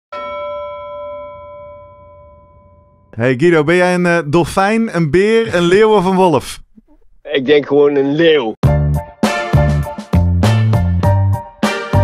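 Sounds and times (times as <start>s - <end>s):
bell-like chime ringing: 0.1s - 3.2s.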